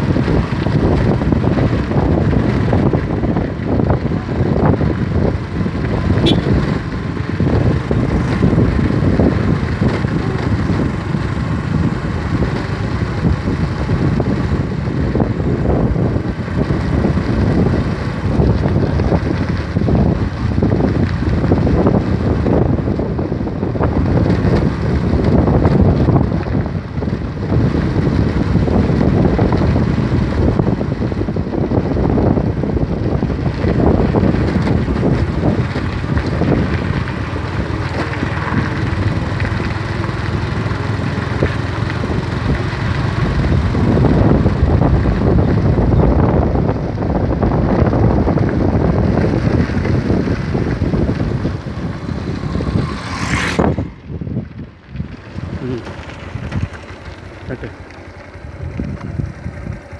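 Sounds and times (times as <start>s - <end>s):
vehicle engine running: 0.0s - 59.9s
wind rumble on microphone: 0.0s - 59.9s.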